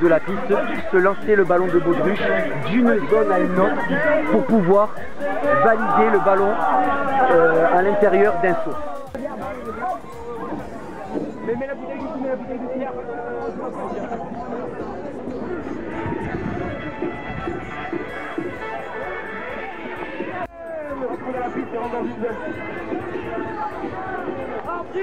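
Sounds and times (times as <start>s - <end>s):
background music: 0.0s - 25.0s
many voices talking and calling: 0.0s - 25.0s.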